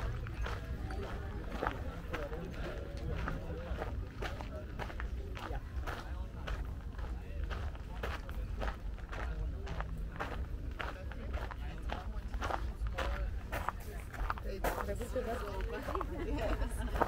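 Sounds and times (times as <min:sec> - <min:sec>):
footsteps walking: 0:00.0 - 0:17.0
people talking in background: 0:00.0 - 0:17.0.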